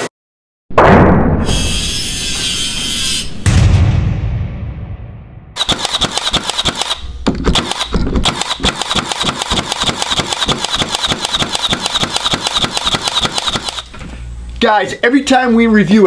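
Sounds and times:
brad nailer firing into hardwood: 5.6s - 13.9s.

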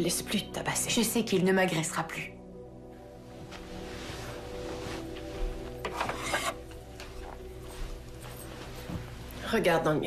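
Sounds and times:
soft sustained music tones: 0.0s - 10.0s
small objects scraping on a dresser: 4.2s - 6.6s.

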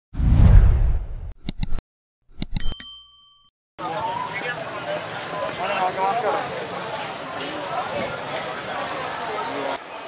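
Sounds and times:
quick clicks: 1.4s - 2.8s
bright bell ding: 2.4s - 3.5s
crowd noise and voices: 3.8s - 10.0s.

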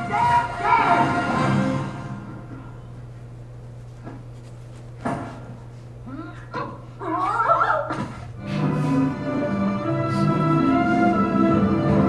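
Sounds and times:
steady low hum: 0.0s - 12.0s
wavering whimpering cry: 6.0s - 8.1s.

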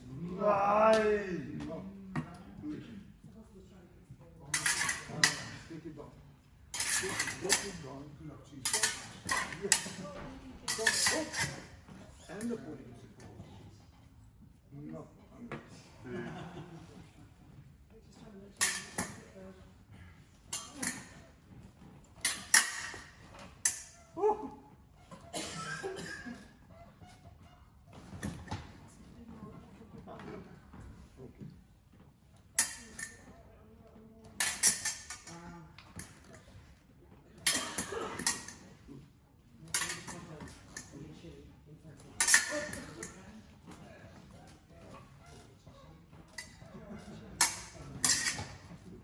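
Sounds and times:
metal blades clashing and scraping: 4.5s - 5.7s, 6.7s - 7.9s, 8.6s - 10.0s, 10.7s - 11.8s, 39.7s - 41.0s, 42.2s - 43.2s, 46.4s - 48.7s.

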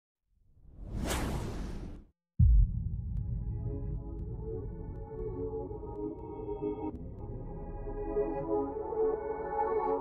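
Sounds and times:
whoosh sound effect: 0.8s - 2.0s.

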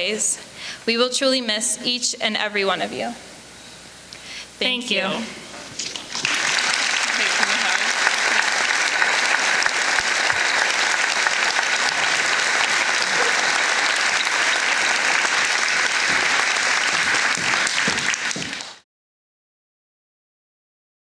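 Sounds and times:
audience applause: 5.8s - 18.8s.

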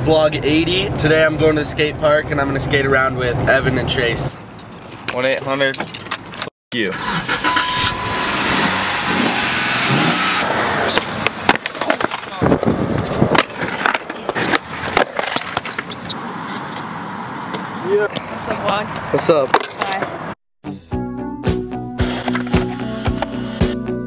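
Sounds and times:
wind and road noise: 0.0s - 20.4s
skateboard wheels rolling on concrete: 10.4s - 20.4s
skateboard clacking on ground: 10.9s - 16.0s, 17.5s - 20.2s.

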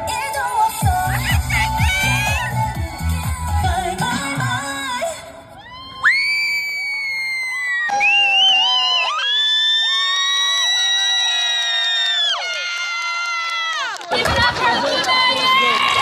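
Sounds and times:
audience screaming and cheering: 5.5s - 16.0s.

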